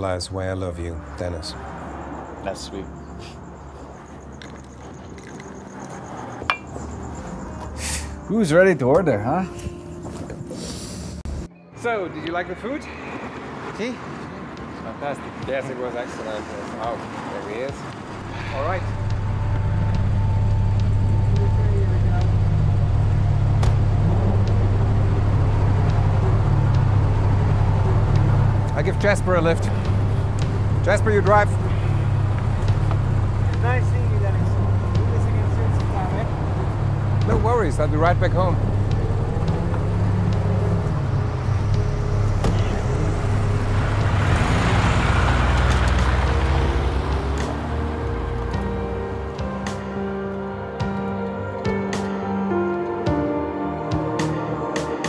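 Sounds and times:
soft background music: 0:00.0 - 0:04.3, 0:05.3 - 0:55.0
car passing and pulling away: 0:00.0 - 0:55.0.

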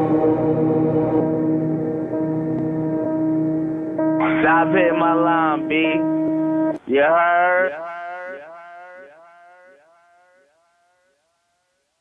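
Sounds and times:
man's word echoing: 0:04.2 - 0:06.1, 0:06.8 - 0:09.9.

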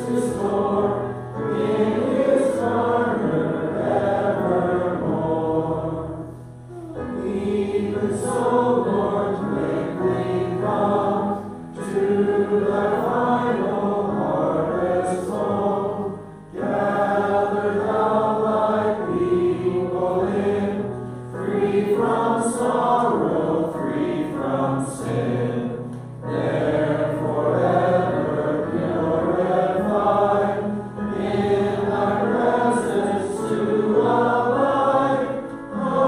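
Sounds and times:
electric piano: 0:00.0 - 0:36.0
voices singing a hymn: 0:00.0 - 0:36.0.

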